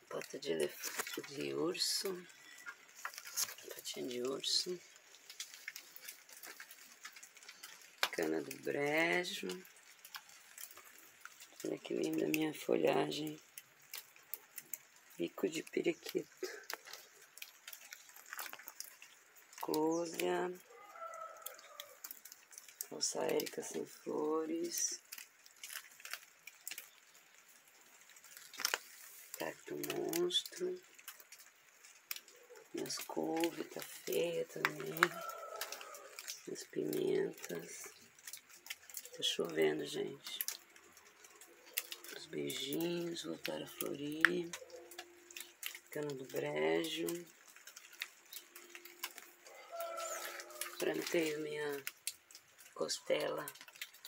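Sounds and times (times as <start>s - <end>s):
rainwater drips: 0.0s - 54.0s.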